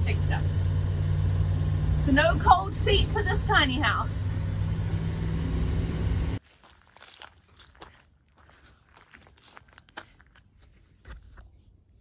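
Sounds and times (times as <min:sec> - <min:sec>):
footsteps crunching through dry grass: 0:06.4 - 0:11.5.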